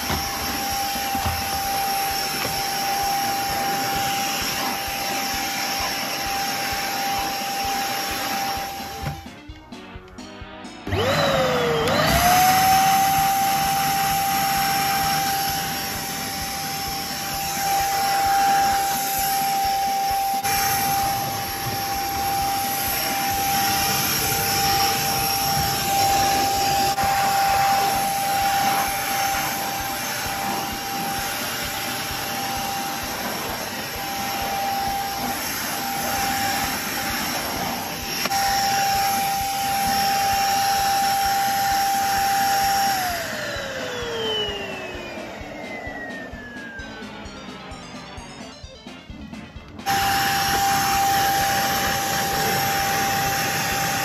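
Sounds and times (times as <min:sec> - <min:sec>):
vacuum cleaner motor whine: 0:00.0 - 0:10.1, 0:10.8 - 0:54.0.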